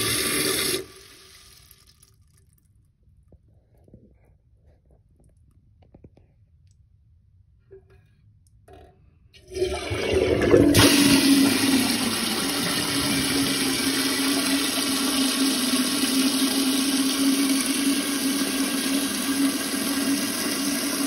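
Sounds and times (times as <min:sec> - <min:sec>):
toilet tank water rushing: 0:00.0 - 0:02.0, 0:09.4 - 0:21.0.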